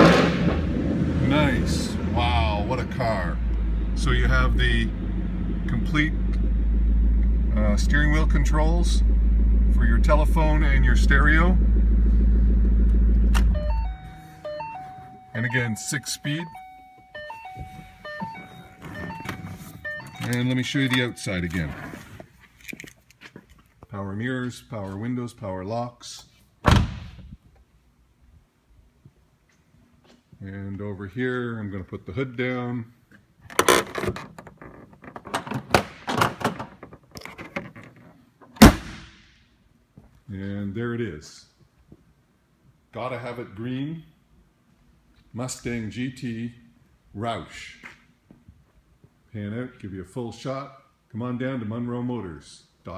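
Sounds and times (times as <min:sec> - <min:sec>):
car engine idling: 0:00.1 - 0:16.3
electronic chime tones: 0:13.5 - 0:21.5
car hood slamming shut: 0:26.7 - 0:27.2.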